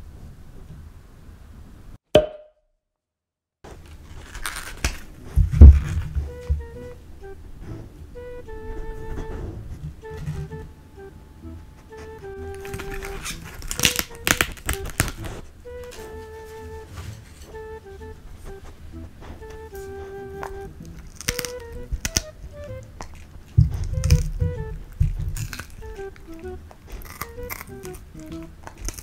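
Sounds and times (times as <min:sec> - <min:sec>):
short blip: 0:02.2 - 0:02.6
light background music: 0:05.0 - 0:29.0
heavy thump on wooden board: 0:23.6 - 0:25.4.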